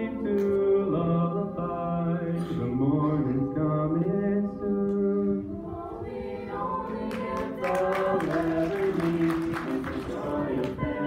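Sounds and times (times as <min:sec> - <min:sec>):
choir singing a cappella: 0:05.2 - 0:11.0.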